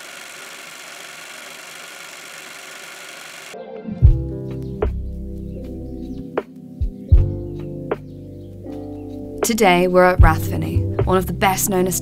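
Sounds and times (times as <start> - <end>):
music: 3.6 - 12.0.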